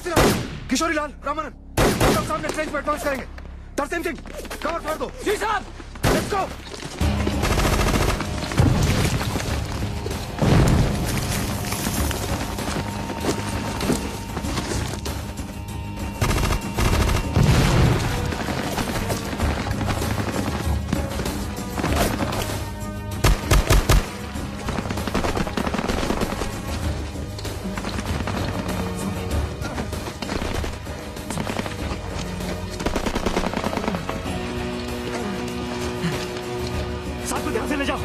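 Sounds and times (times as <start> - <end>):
loud gunshots: 0.0 - 0.7, 1.8 - 2.4, 23.2 - 26.6.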